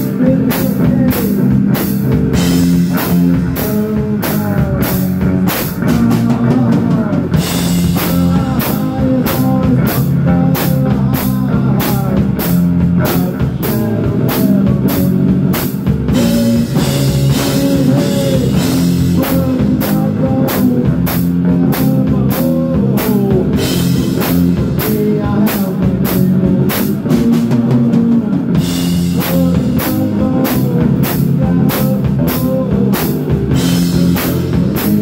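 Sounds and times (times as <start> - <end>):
amplified electric guitar: 0.0 - 35.0
drum kit beat: 0.0 - 35.0.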